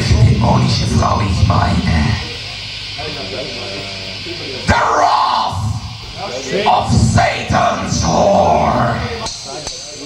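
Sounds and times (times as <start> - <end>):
live black metal band: 4.6 - 10.0.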